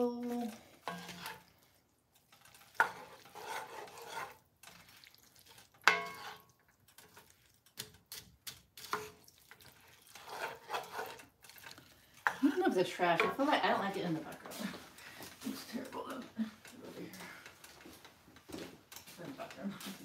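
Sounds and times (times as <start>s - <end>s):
food sizzling: 0.0s - 18.1s
wooden spoon scraping skillet: 0.2s - 20.0s.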